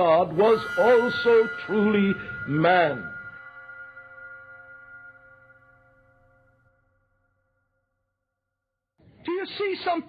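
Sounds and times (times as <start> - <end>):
held music chord: 0.0 - 7.3.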